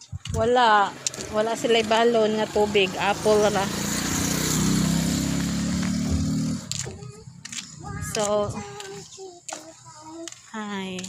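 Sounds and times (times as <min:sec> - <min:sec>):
vehicle engine idling: 0:05.5 - 0:10.1.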